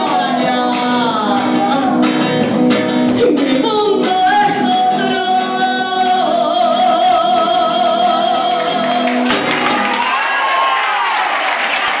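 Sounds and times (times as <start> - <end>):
audience applauding and cheering: 8.6 - 12.0.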